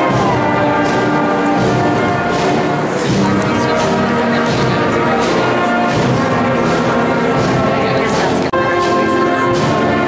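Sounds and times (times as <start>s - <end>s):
live band with brass chords: 0.0s - 10.0s.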